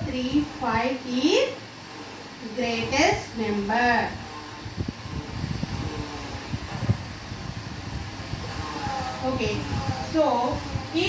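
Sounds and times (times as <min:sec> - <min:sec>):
low irregular rumbling: 0:00.0 - 0:11.0.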